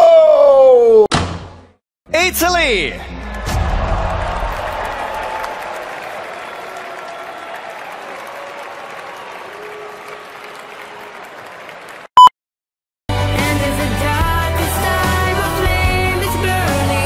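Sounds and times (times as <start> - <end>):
audience applauding and cheering: 3.2 - 12.1.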